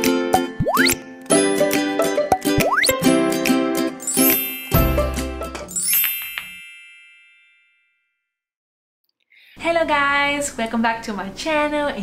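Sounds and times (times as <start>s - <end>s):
bright chime ringing: 4.0s - 5.1s, 5.7s - 7.9s.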